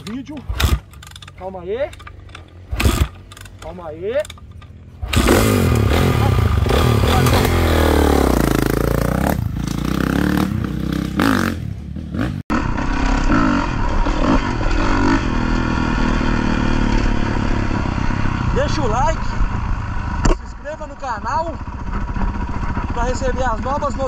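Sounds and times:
motocross bike engine revving: 0.0 - 24.0.

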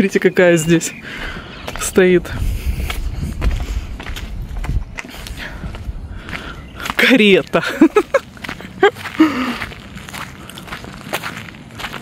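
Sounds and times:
footsteps on grassy ground: 0.0 - 12.0.

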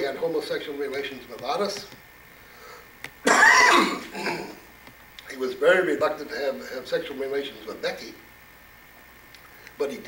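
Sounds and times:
man coughing: 3.3 - 4.6.

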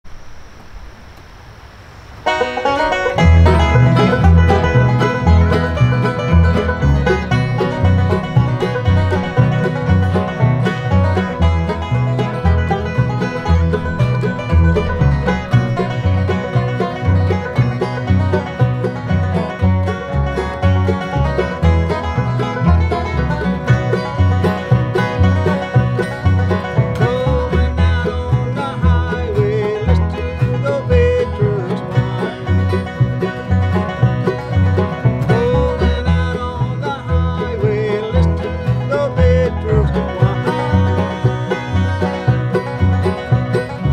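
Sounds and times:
bluegrass band playing: 2.2 - 43.9
upright bass beat: 3.1 - 43.9.

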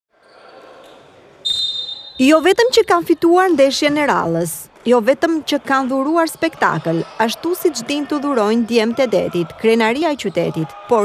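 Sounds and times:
referee's whistle blast: 1.4 - 2.5.

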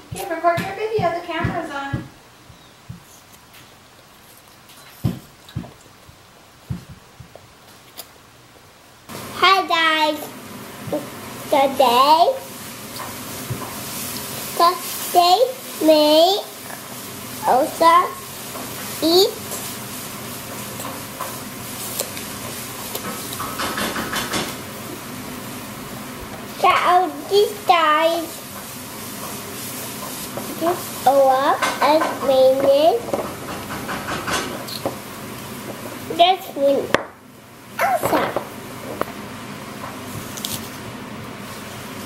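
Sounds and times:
child chewing apple: 3.0 - 6.2, 7.3 - 8.2, 21.7 - 23.6, 34.6 - 35.0
food frying in a pan: 9.1 - 42.0
crisp apple crunch: 21.8 - 23.5.

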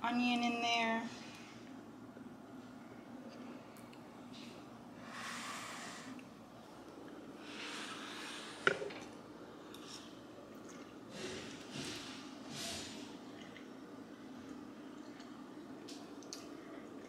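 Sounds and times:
low steady hum: 0.0 - 17.0
breathing through nose: 5.0 - 6.2, 11.1 - 13.1
person chewing: 13.3 - 13.8.

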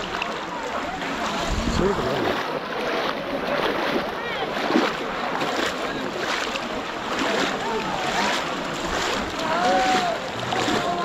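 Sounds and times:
people wading through water: 0.0 - 11.0
faint shouting voices: 3.0 - 11.0.

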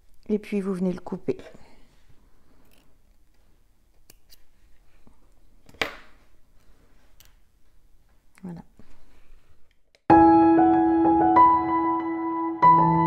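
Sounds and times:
scissors snipping thread: 3.9 - 4.5.

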